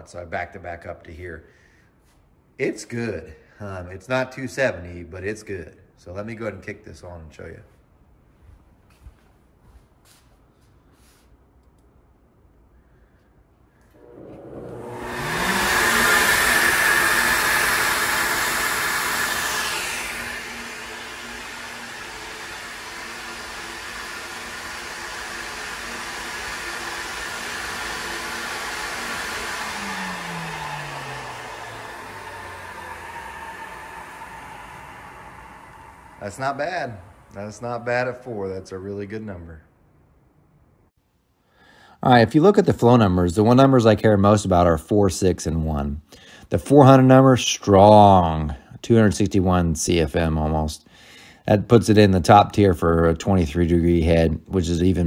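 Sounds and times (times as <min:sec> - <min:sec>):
air rushing through intake: 0:13.9 - 0:37.9
motor whine: 0:14.0 - 0:37.8.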